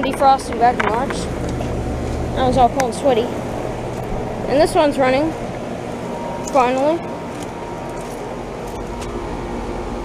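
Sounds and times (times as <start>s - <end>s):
compressor hum: 0.0s - 10.0s
condenser fan rushing: 0.0s - 10.0s
faint steady whine: 0.0s - 10.0s.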